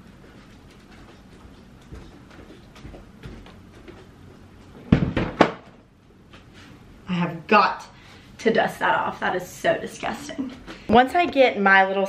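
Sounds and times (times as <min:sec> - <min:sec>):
faint knocks and rustling: 0:00.0 - 0:06.8.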